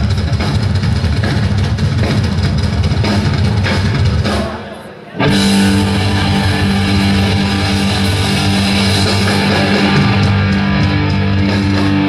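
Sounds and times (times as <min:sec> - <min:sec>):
distorted electric guitars: 0:00.0 - 0:12.0
drum kit: 0:00.0 - 0:12.0
rumbling bass: 0:05.3 - 0:12.0.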